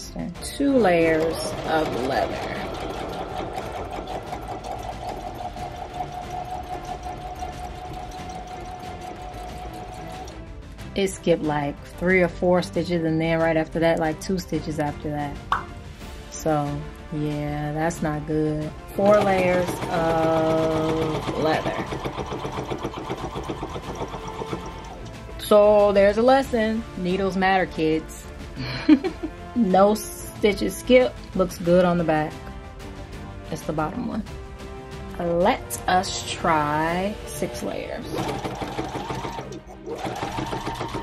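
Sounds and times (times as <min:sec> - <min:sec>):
sewing machine stitching: 0:00.6 - 0:10.4, 0:19.0 - 0:25.5, 0:37.4 - 0:41.0.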